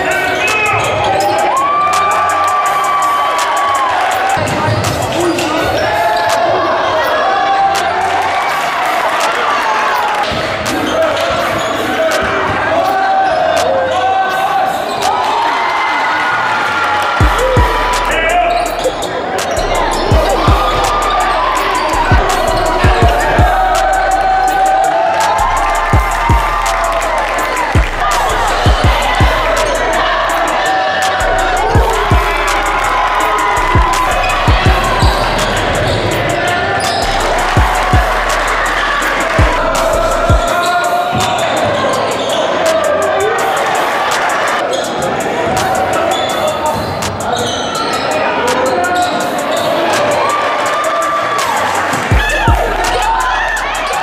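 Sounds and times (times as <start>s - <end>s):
hip-hop music: 0.0s - 54.0s
punchy kick drums: 17.2s - 18.4s, 19.8s - 30.6s, 31.3s - 41.7s, 52.0s - 54.0s
deep bass notes: 17.2s - 19.0s, 19.6s - 24.8s, 25.4s - 40.5s, 52.1s - 54.0s.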